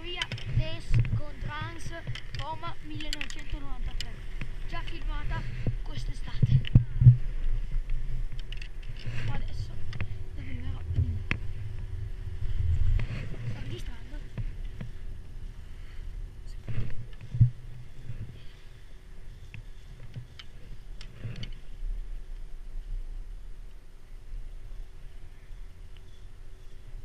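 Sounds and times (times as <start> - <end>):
chairlift low rumble: 0.0 - 27.0
wind on microphone: 0.0 - 27.0.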